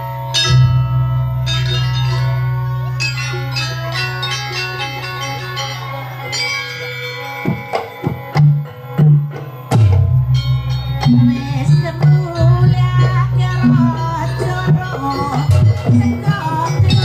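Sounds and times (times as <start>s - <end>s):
metallophones ringing: 0.0s - 17.0s.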